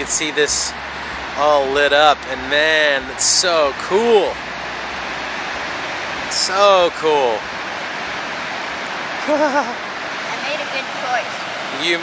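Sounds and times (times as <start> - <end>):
waterfall rushing: 0.0 - 12.0
person laughing: 9.2 - 9.8.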